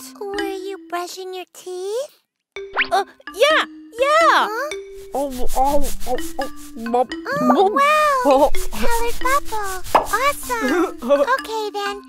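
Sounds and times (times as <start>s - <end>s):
cartoon background music: 0.0s - 12.0s
rhythmic scrubbing: 4.8s - 11.9s.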